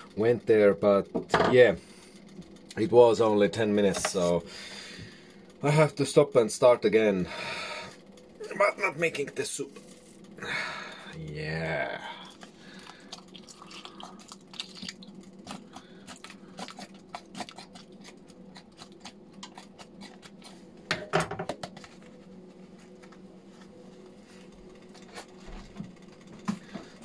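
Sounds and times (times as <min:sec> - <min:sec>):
plastic packet crinkling: 0:12.3 - 0:16.3.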